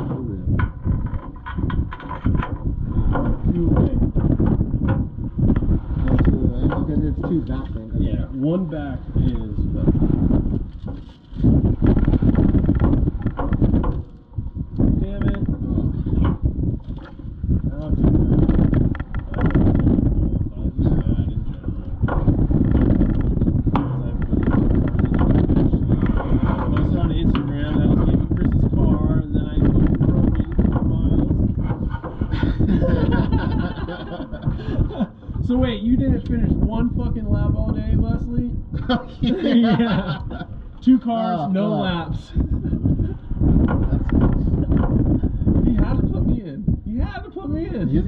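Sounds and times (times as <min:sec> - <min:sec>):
rattling: 0:21.0 - 0:35.8.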